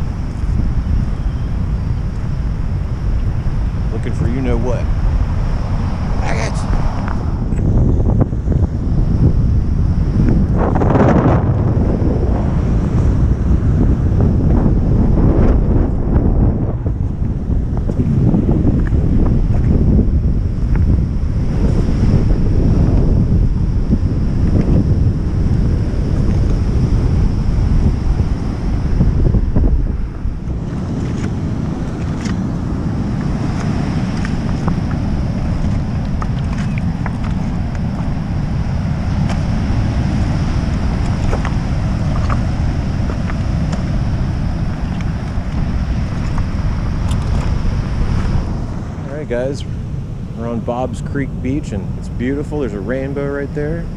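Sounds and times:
wind buffeting microphone: 0.0 - 53.9
ocean surf breaking: 25.5 - 53.9.

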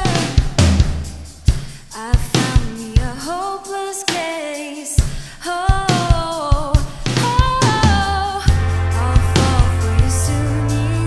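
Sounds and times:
band playing live: 7.4 - 11.0.

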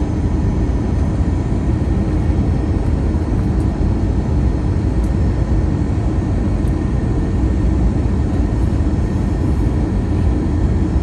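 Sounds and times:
airplane cabin engine rumble: 0.0 - 11.0
faint steady whine: 0.0 - 11.0.

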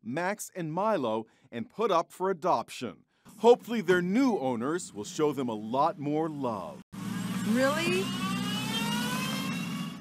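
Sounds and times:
car engine revving: 7.0 - 10.0.

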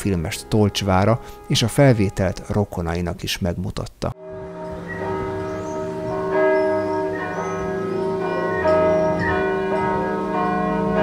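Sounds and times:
church bells ringing: 0.0 - 3.2, 4.2 - 11.0.

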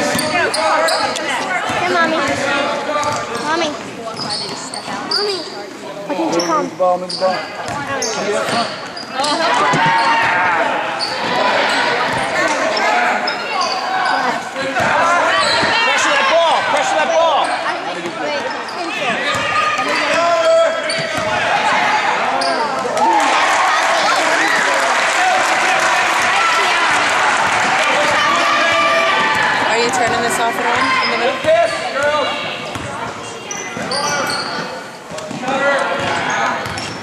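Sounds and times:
ball bouncing on hardwood court: 7.7 - 8.6, 32.7 - 33.0, 35.1 - 37.0
spectators shouting: 19.0 - 32.6.

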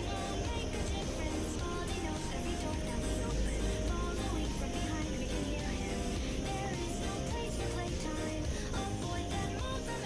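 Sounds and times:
background music with bass line: 0.0 - 10.0.

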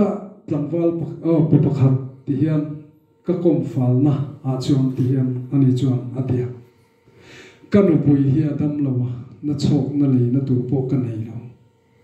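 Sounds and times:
man preaching into microphone: 0.0 - 6.6, 7.7 - 11.5.

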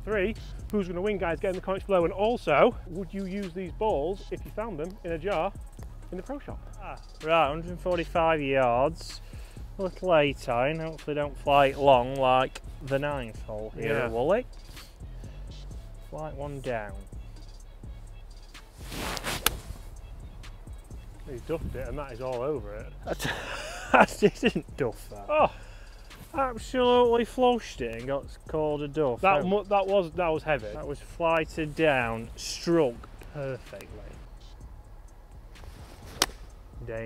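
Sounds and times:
background music: 0.0 - 37.0
golf ball impact crack: 18.6 - 19.8, 35.5 - 36.7
golf club swing whoosh: 18.6 - 21.9, 35.5 - 36.7.

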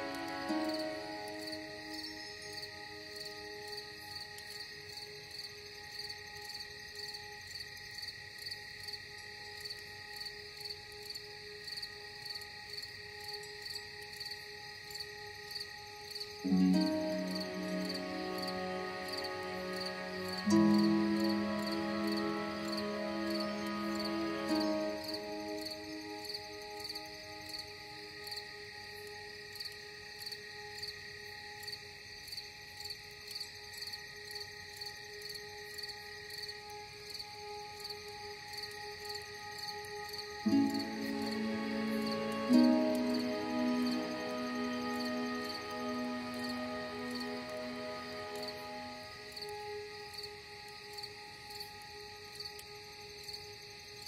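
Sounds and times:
faint sustained drone: 0.0 - 32.8, 33.4 - 54.0
crickets chirping: 0.0 - 54.0
low sustained music chord: 0.0 - 54.0.

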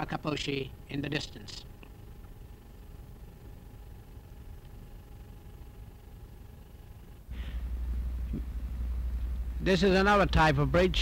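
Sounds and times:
faint constant tones: 0.0 - 11.0
film soundtrack hiss: 0.0 - 11.0.

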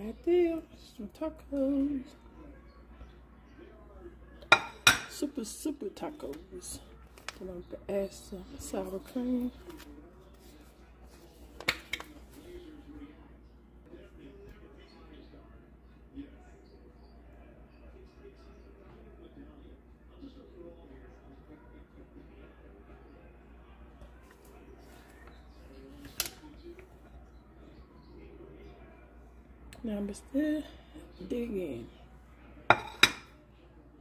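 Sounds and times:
faint room noise: 0.0 - 34.0.

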